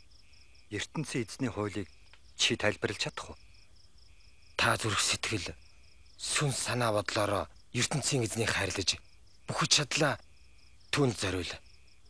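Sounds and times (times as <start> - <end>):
crickets chirping: 0.0 - 12.0
man speaking: 0.7 - 3.4, 4.6 - 5.6, 6.2 - 10.2, 10.9 - 11.6.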